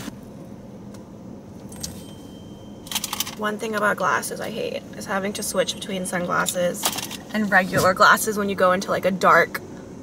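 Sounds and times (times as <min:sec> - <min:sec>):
car cabin hum: 0:00.0 - 0:09.9.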